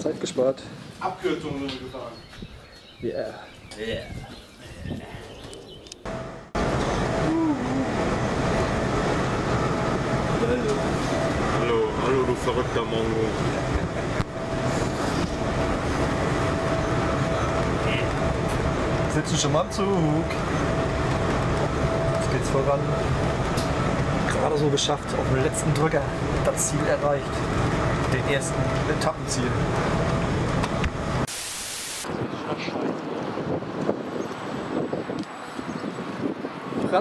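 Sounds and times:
wind buffeting microphone: 0:00.8 - 0:31.3, 0:32.0 - 0:37.0
train rumble and hiss: 0:06.1 - 0:32.9
burst of hiss: 0:31.3 - 0:32.0.

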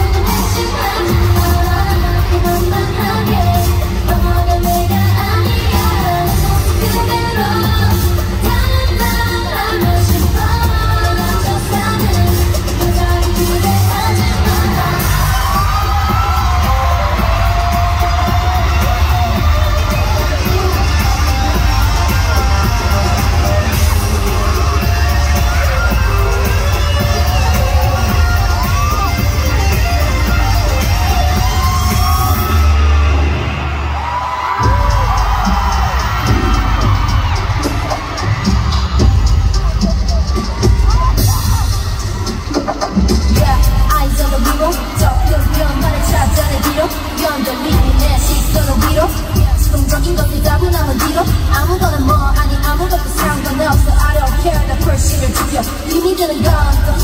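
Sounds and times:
pop backing track: 0:00.0 - 0:32.7
fans yelling and whooping: 0:00.0 - 0:57.0.

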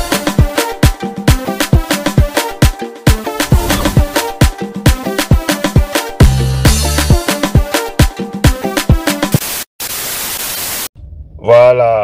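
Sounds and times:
static hiss: 0:09.2 - 0:10.9.

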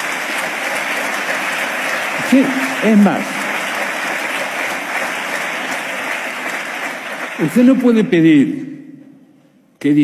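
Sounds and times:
audience applauding: 0:00.0 - 0:08.3.

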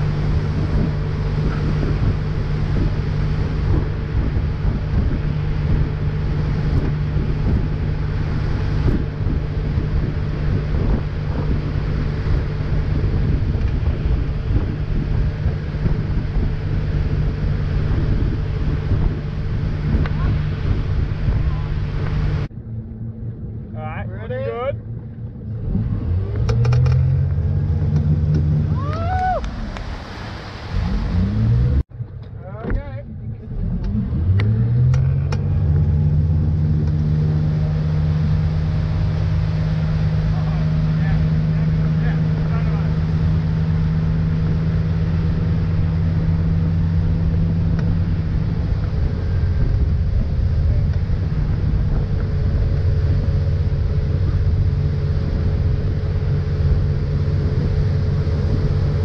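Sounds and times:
boat engine: 0:00.0 - 0:59.0
water and wind rushing: 0:00.0 - 0:59.0.

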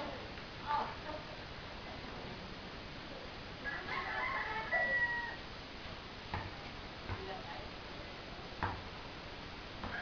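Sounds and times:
rooster crowing: 0:03.6 - 0:05.4
basketball bouncing on concrete: 0:06.3 - 0:07.5, 0:08.6 - 0:09.0, 0:09.8 - 0:10.0.

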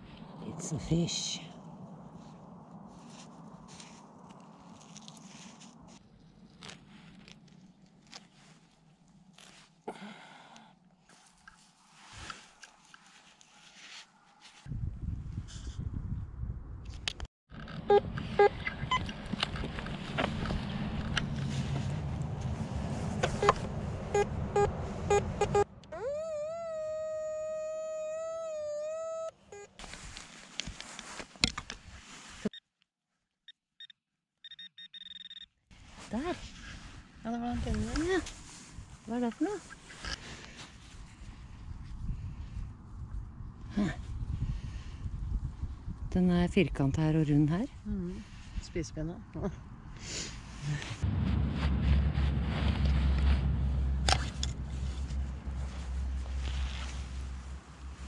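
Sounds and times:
rustling and scraping: 0:02.0 - 0:09.8, 0:11.0 - 0:14.7, 0:17.5 - 0:24.1, 0:29.8 - 0:32.5, 0:35.7 - 0:42.3, 0:50.5 - 0:58.0
metal detector signal tone: 0:33.5 - 0:35.5
short beeps: 0:33.5 - 0:35.5.

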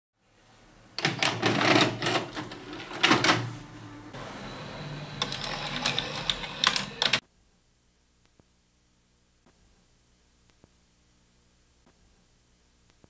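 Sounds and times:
mechanism clicks: 0:05.2 - 0:07.2.

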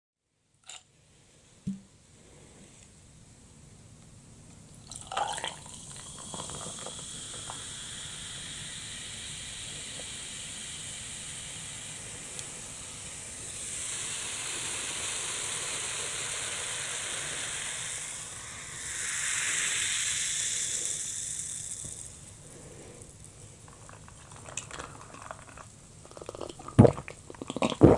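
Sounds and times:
soda fizzing hiss: 0:04.8 - 0:27.9
ice cracking and clinking: 0:23.9 - 0:26.8.

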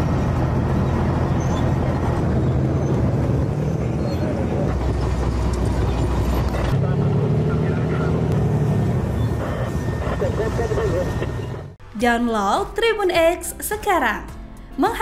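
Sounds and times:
tracked bulldozer engines rumbling: 0:00.0 - 0:11.8.

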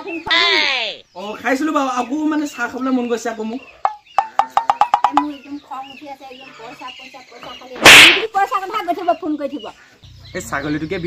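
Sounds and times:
short hollow knocks: 0:03.8 - 0:05.3.

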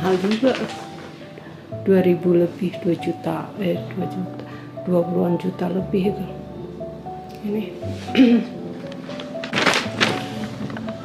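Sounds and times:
soft background music: 0:00.0 - 0:11.0
person coughing: 0:08.1 - 0:08.6.

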